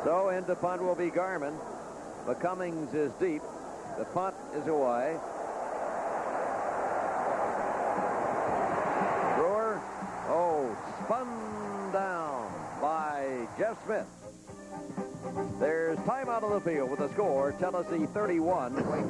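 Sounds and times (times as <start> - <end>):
stadium crowd roar: 3.3 - 14.0.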